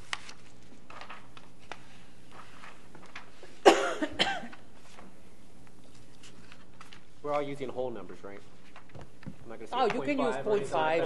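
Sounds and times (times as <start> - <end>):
person coughing: 3.6 - 4.6.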